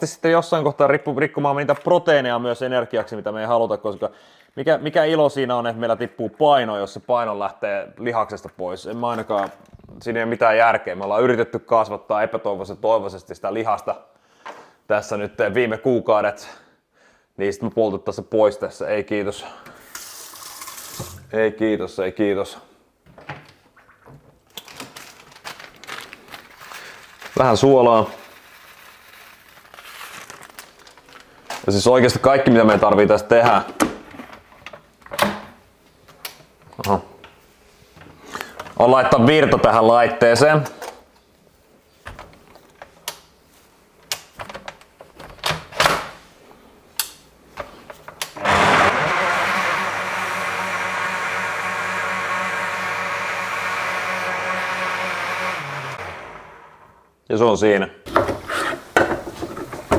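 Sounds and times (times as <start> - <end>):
faint crinkling: 23.8 - 31.9
blender running: 48.4 - 57.0.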